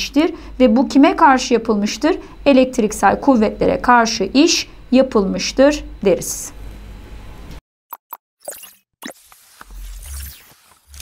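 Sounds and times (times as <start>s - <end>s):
faint room hum: 0.0s - 7.6s.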